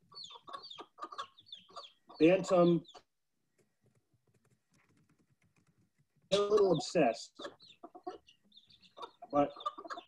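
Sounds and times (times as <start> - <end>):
chickens calling and clucking: 0.0 - 3.8, 6.2 - 10.0.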